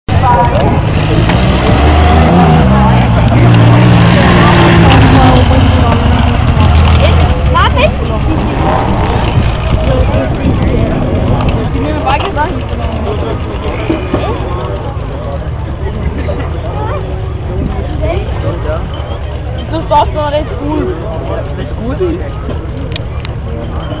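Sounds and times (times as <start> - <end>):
racing car engines revving: 0.1 - 24.0.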